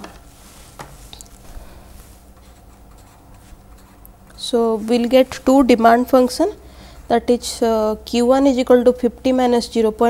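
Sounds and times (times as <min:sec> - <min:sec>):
marker pen scratching on paper: 0:02.4 - 0:05.3.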